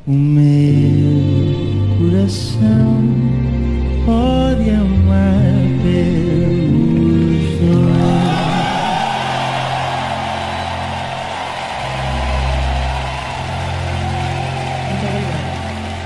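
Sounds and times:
soft orchestral chord: 0.4s - 16.0s
audience cheering and applauding: 7.7s - 16.0s.

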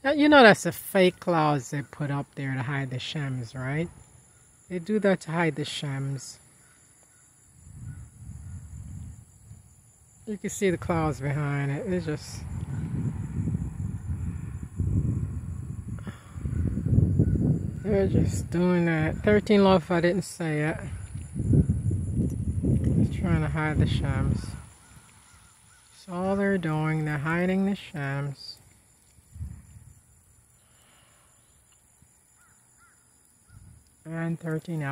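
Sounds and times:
faint bird calls: 24.6s - 26.0s, 30.6s - 33.8s.

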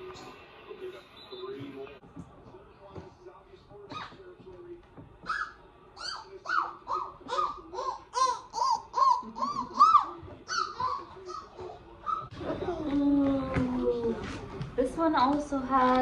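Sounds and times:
woman talking: 14.8s - 16.0s.

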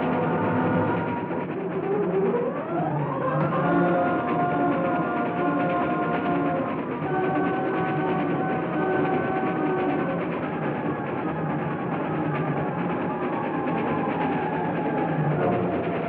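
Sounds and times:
train rattling along: 0.0s - 16.0s.

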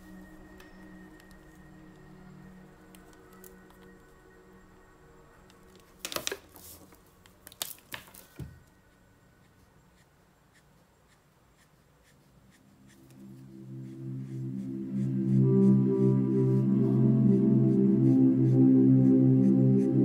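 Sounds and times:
faint instrumental music: 0.0s - 20.0s.

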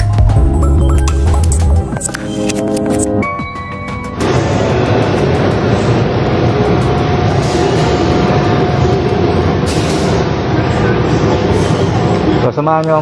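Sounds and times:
steady rushing background noise: 0.0s - 13.0s.

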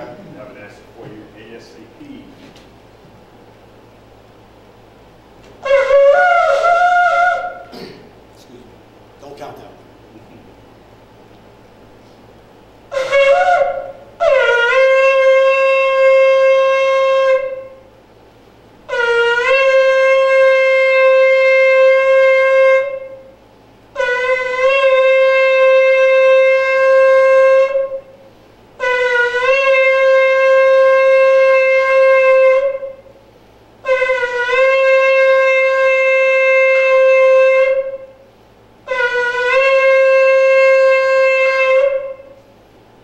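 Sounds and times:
ram's horn blasts: 5.5s - 7.8s, 12.9s - 18.0s, 18.8s - 33.2s, 33.8s - 42.5s.

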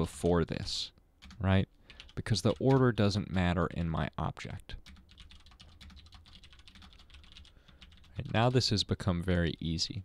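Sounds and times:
typing on keyboard: 1.2s - 3.4s, 4.8s - 8.5s.

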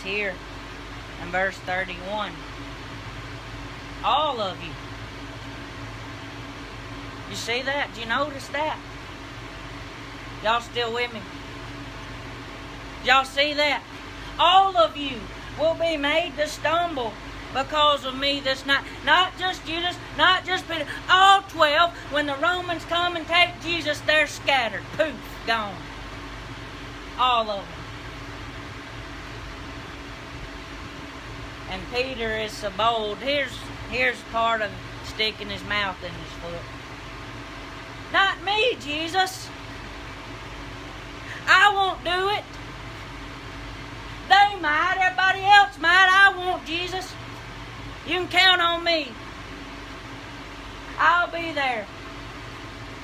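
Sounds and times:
constant hiss: 0.0s - 53.0s
faint constant tone: 0.0s - 53.0s
low mechanical hum: 0.0s - 53.0s.

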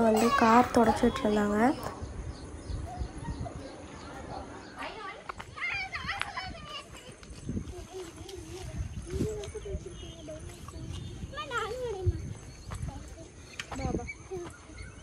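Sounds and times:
people talking quietly: 0.0s - 15.0s.

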